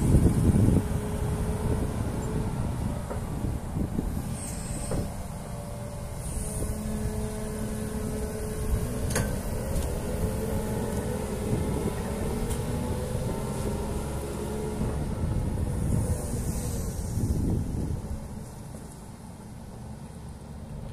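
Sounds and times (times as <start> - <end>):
excavator diesel engine running: 0.0 - 20.9.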